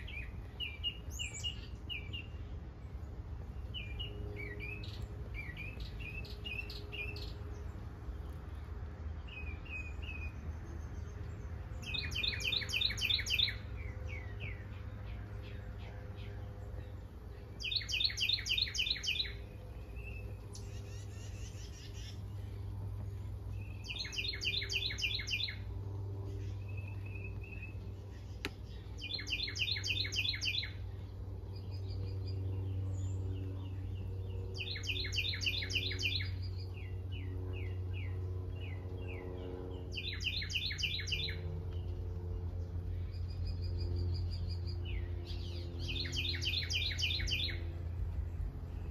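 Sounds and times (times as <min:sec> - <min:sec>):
low steady rumble: 0:00.0 - 0:48.9
songbird trilling: 0:03.6 - 0:07.5, 0:11.8 - 0:14.7, 0:15.4 - 0:22.5, 0:23.6 - 0:25.7, 0:26.4 - 0:39.2, 0:39.9 - 0:41.9, 0:42.9 - 0:47.7.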